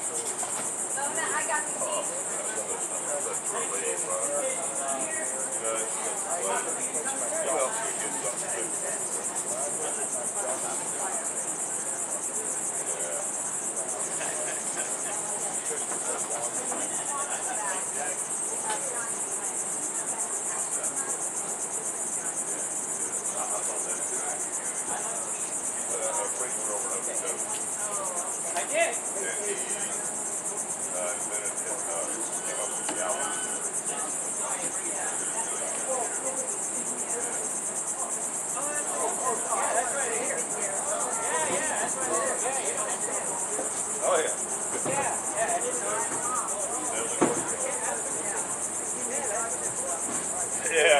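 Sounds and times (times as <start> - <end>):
faint people talking: 0.0 - 50.9
high-pitched insect chorus: 0.0 - 50.9.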